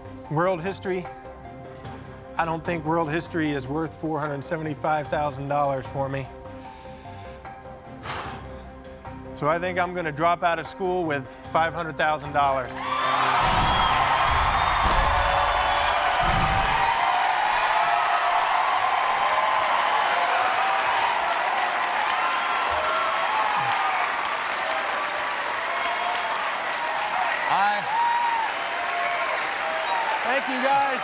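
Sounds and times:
audience applauding and cheering: 12.8s - 31.0s.

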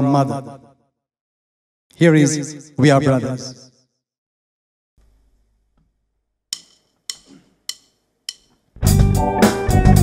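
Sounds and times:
drumsticks clicking count-in: 6.5s - 8.8s.

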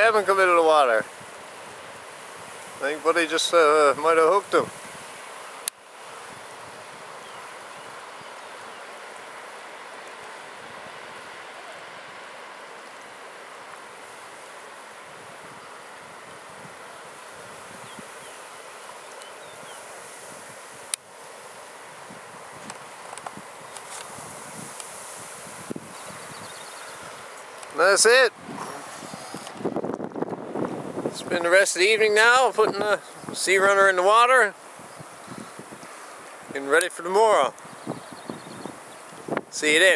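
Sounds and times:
outdoor background hiss: 0.0s - 39.9s.

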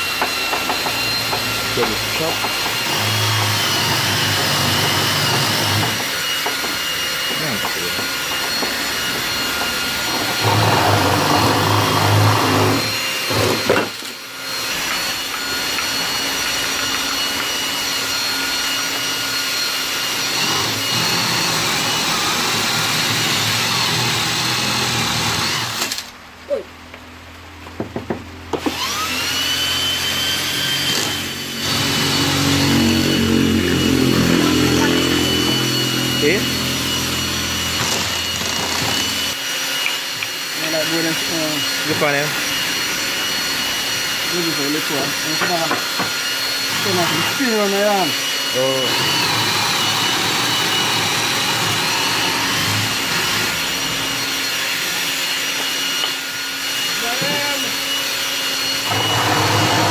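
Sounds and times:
electric drill boring into wood: 0.0s - 26.2s, 28.5s - 59.9s.

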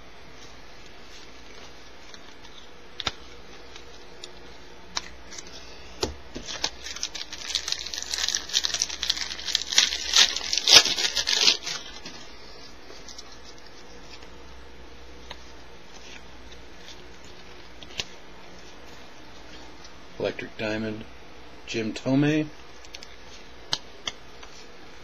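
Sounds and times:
wrapper tearing and crinkling: 6.4s - 12.2s.

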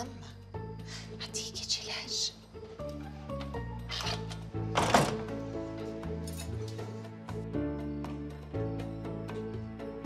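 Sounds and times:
wooden door shutting thud: 4.7s - 5.4s.

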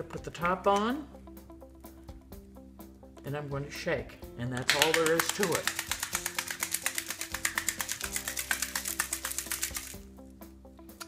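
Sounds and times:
background music: 0.0s - 11.0s
egg rattling in a jar: 4.6s - 10.1s.

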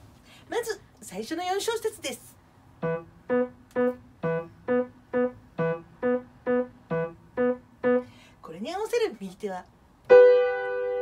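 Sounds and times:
piano playing single notes: 10.1s - 11.0s.

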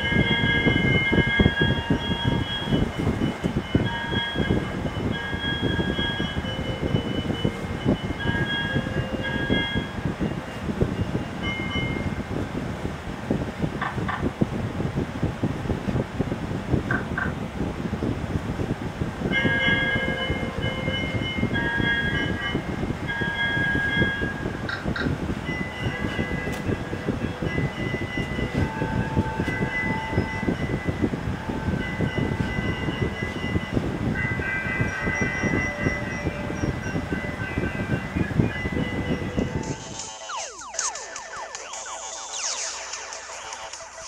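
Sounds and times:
high steady tones: 0.0s - 12.9s, 19.2s - 44.0s.

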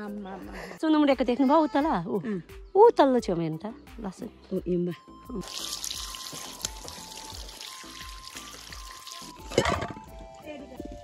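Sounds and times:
water from hose splashing on greens: 5.4s - 10.0s.

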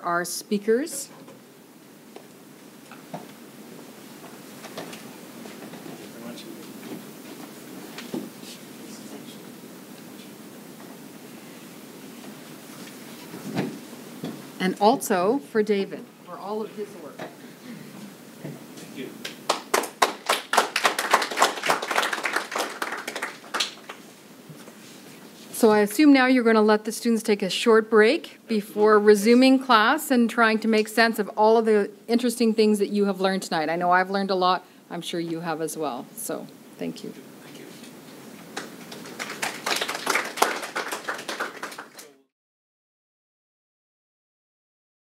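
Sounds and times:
audience applauding: 19.5s - 24.0s, 38.5s - 42.2s.

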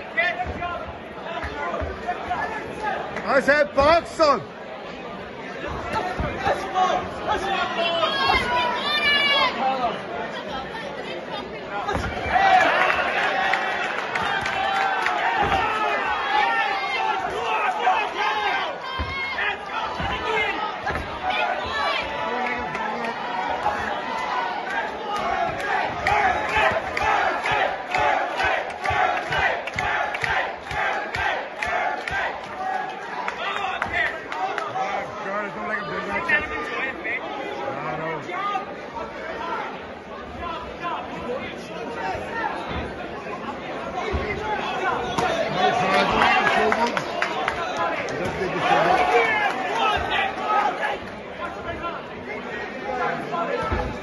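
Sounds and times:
crowd yelling and shouting: 0.0s - 54.0s.

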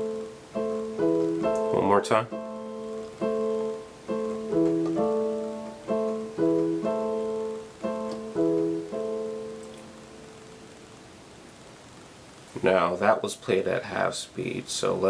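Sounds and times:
keyboard piano chords: 0.0s - 11.2s.

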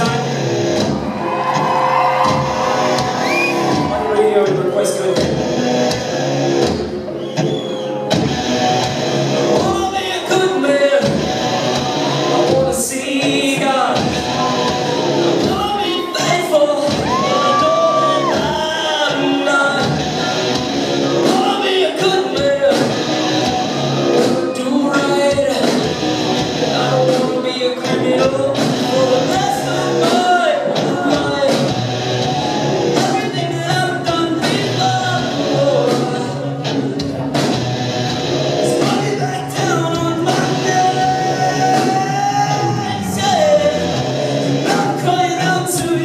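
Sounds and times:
male lead vocal: 0.0s - 0.5s, 9.5s - 37.2s, 38.6s - 46.0s
distorted electric guitars: 0.0s - 46.0s
drums: 0.0s - 46.0s.

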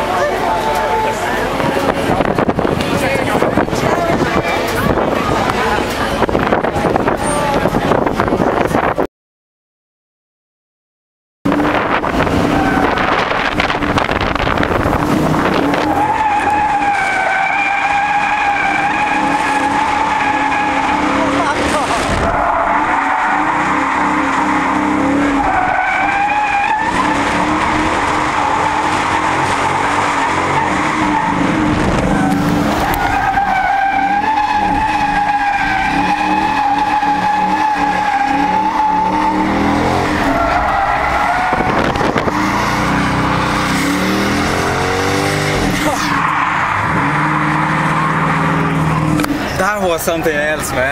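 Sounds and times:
car engine running hard: 0.0s - 9.0s, 11.5s - 50.9s
tyres squealing: 14.8s - 50.9s.

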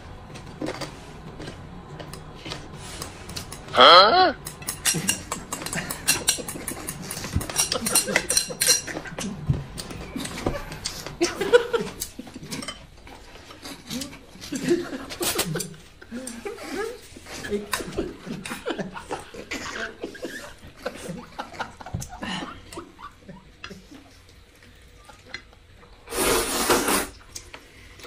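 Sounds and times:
chopsticks scraping a dish: 4.4s - 9.4s.

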